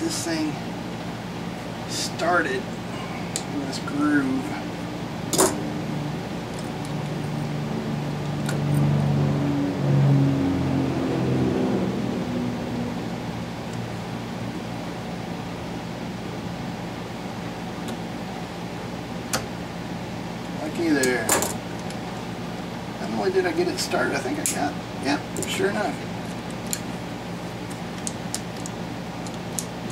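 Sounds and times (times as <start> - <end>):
steady background hum: 0.0 - 29.9.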